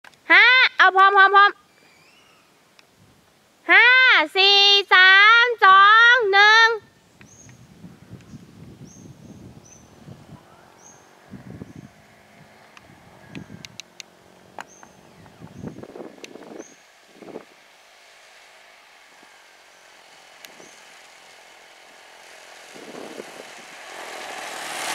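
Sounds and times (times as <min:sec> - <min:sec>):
motor scooter engine: 0:07.3 - 0:24.9.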